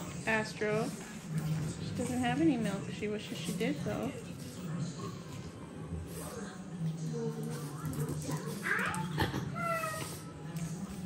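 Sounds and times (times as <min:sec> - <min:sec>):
puppy whining: 0:08.6 - 0:10.4.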